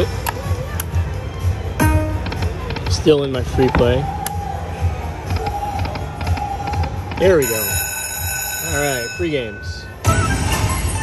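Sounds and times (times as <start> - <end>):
slot machine reel-spin music: 1.8 - 3.1, 7.2 - 11.0.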